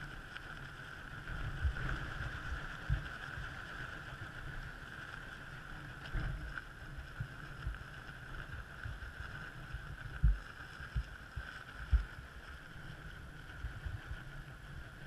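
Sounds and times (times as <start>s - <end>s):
wind buffeting microphone: 1.0s - 5.1s, 5.7s - 15.0s.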